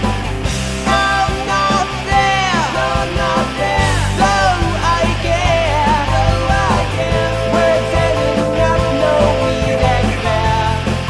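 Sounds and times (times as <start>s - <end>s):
rock and roll song: 0.4s - 10.8s.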